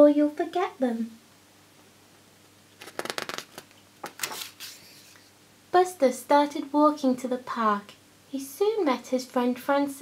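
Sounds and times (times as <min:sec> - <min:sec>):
paper page turning: 0:02.8 - 0:05.3.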